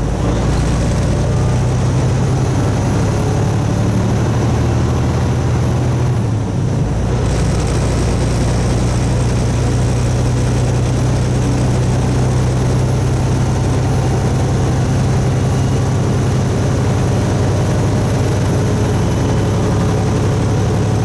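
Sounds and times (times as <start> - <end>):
truck engine and road drone: 0.0 - 21.0.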